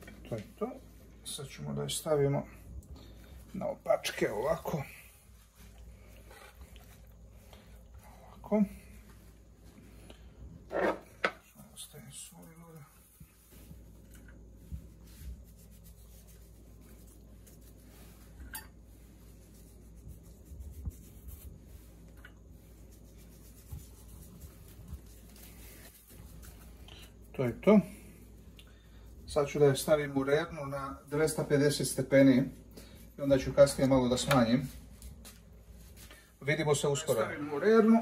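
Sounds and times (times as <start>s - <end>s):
gloved hands rubbing chicken: 0.2s - 10.1s, 11.9s - 38.0s.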